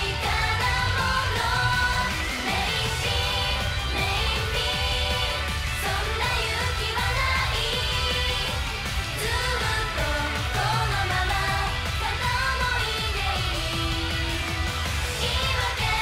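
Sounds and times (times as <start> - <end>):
pop backing track: 0.0 - 16.0
women singing into microphones: 0.0 - 16.0.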